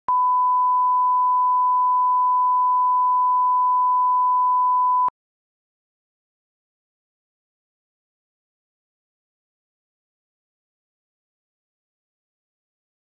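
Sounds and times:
steady test tone beep: 0:00.1 - 0:05.1.

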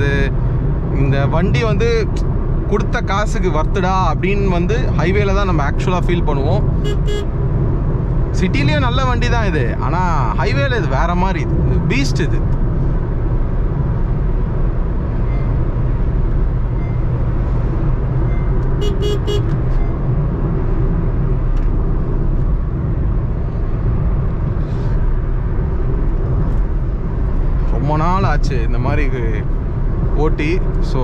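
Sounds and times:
low car cabin rumble: 0:00.0 - 0:31.0
vehicle horn toots: 0:06.8 - 0:07.3, 0:18.8 - 0:19.6.

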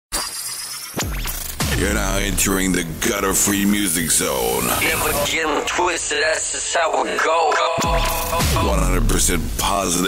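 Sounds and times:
music: 0:01.0 - 0:05.8, 0:06.9 - 0:10.0
voice-over: 0:01.7 - 0:10.0.

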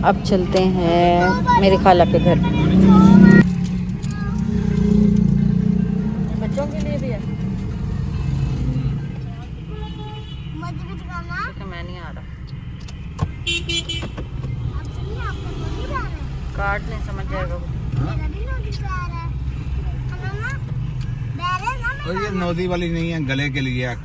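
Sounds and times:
car engine and road rumble: 0:00.0 - 0:24.0
vehicle horn honk: 0:09.6 - 0:10.7, 0:13.4 - 0:14.2.

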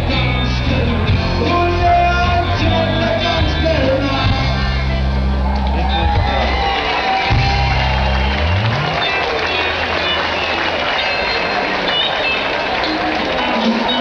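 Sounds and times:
crowd noise with shouts: 0:00.0 - 0:14.0
live rock band playing: 0:00.0 - 0:14.0
bass line sliding upward: 0:05.0 - 0:11.0.

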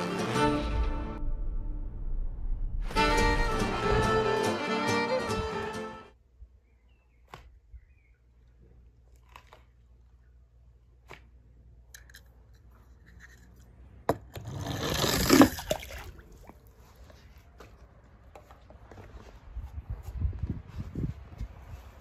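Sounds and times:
toy car rolling scrape: 0:14.3 - 0:15.6.

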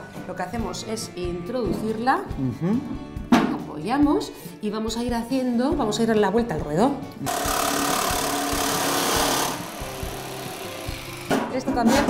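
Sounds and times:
jigsaw cutting metal: 0:07.2 - 0:11.4.

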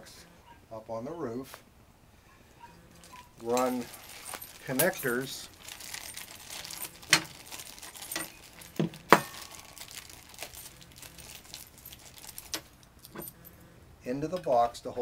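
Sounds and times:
small metal parts clinking: 0:02.9 - 0:13.7.

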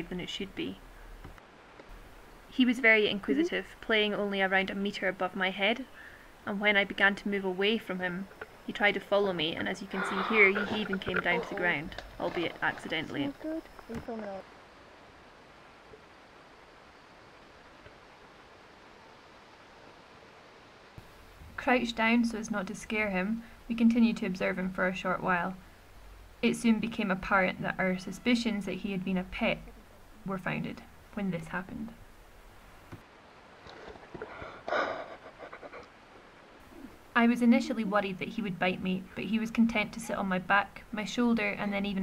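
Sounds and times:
faint background hiss: 0:00.0 - 0:42.0
person laughing breathily: 0:34.2 - 0:35.9.

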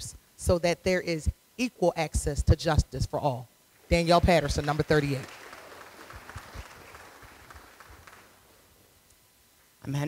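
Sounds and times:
audience clapping: 0:03.9 - 0:08.8.

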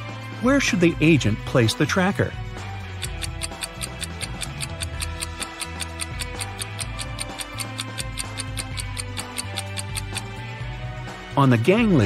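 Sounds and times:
background music: 0:00.0 - 0:12.0
ticking countdown timer: 0:02.8 - 0:10.4.

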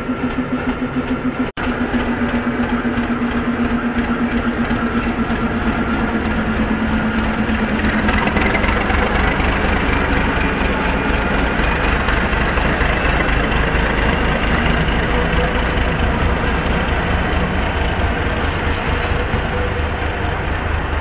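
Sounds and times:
diesel locomotive engine humming: 0:00.0 - 0:21.0.

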